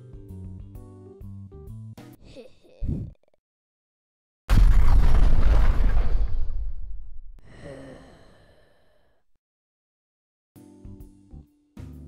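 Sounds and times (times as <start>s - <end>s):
low rumble of an explosion: 4.5s - 7.4s
faint sigh falling in pitch: 7.4s - 9.0s.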